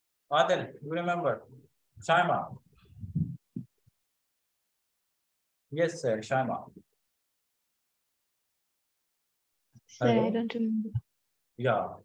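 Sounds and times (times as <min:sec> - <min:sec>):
muffled low thumps: 0:02.5 - 0:03.7.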